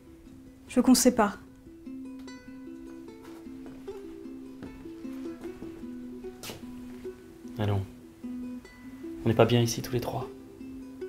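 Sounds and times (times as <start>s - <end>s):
slow gentle melody: 0.0s - 11.0s.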